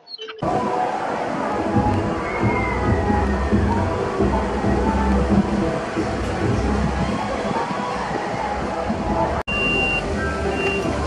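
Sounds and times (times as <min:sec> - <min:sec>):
high electronic beeps: 0:00.0 - 0:00.4, 0:09.5 - 0:11.0
outdoor background noise: 0:00.0 - 0:11.0.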